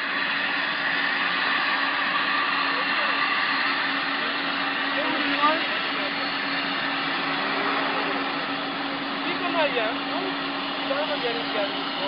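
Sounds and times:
constant low hum: 0.0 - 12.0
mechanical rushing noise: 0.0 - 12.0.

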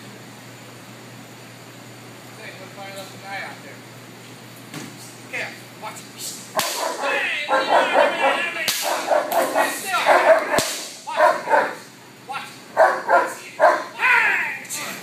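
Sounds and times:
sharp cracks: 6.6 - 7.0, 8.6 - 9.5, 10.5 - 11.0
dog barking: 6.6 - 11.9, 12.7 - 14.0.

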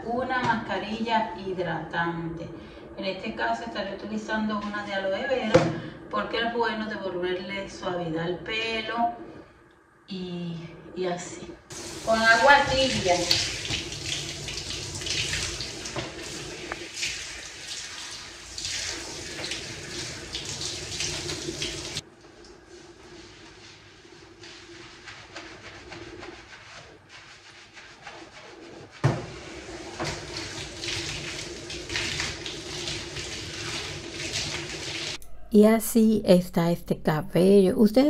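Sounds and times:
shower spraying water: 11.7 - 35.2.

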